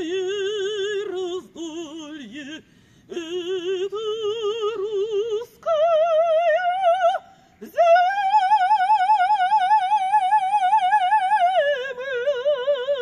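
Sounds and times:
woman singing operatically: 0.0s - 13.0s.

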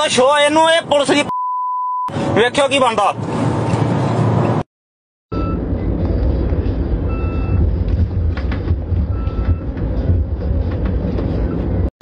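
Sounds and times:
car engine rumble and road noise: 0.0s - 1.4s, 2.0s - 4.7s, 5.3s - 11.9s.

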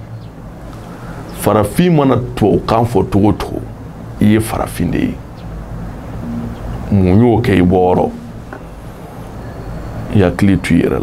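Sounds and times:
low background hum and hiss: 0.0s - 11.0s.

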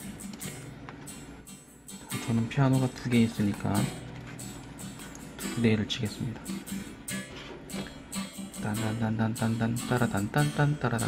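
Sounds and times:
soft acoustic guitar: 0.0s - 11.0s.

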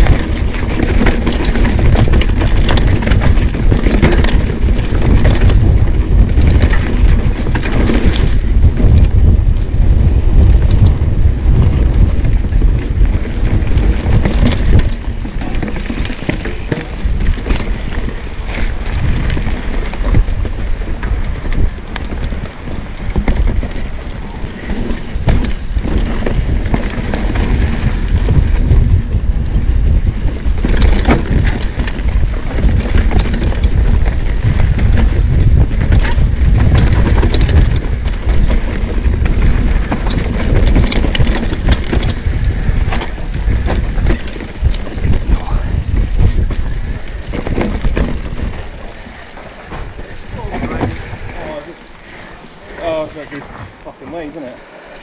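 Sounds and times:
wind on microphone: 0.0s - 54.0s
bike chain and frame rattling: 0.0s - 55.0s
bike tyres rumbling on dirt: 0.0s - 55.0s.

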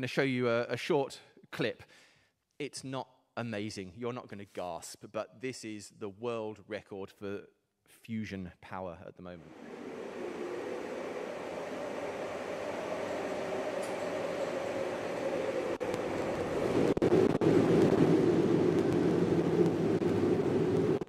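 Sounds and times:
steady rumble: 9.4s - 21.0s.

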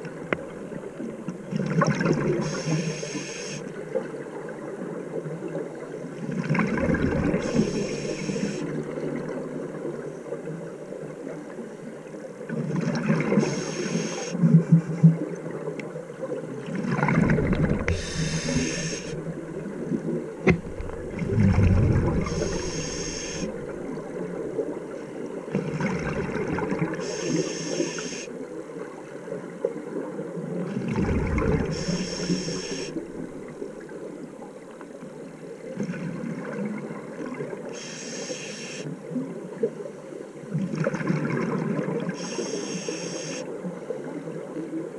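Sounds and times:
regulator inhalation hiss: 2.4s - 3.7s, 7.4s - 8.6s, 13.4s - 14.4s, 17.9s - 19.3s, 22.2s - 23.7s, 27.0s - 28.3s, 31.7s - 33.0s, 37.8s - 38.9s, 42.2s - 43.4s
exhaled bubbles rumbling: 6.3s - 9.7s, 16.6s - 27.0s, 30.3s - 34.6s.

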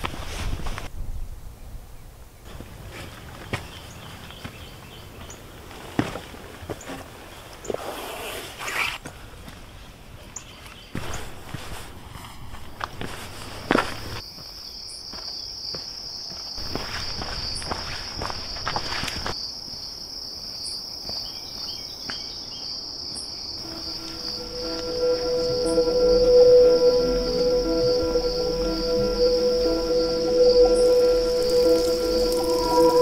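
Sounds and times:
high insect chorus: 13.0s - 33.0s
soft music drone: 23.6s - 33.0s.

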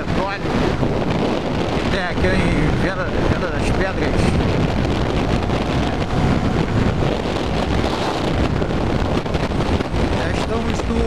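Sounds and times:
motorcycle engine drone: 0.0s - 11.0s
wind buffeting microphone: 0.0s - 11.0s.

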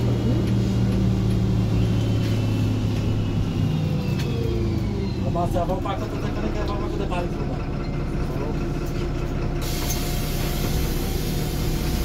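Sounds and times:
diesel engine humming: 0.0s - 12.0s
compressed air hissing: 9.6s - 12.0s.

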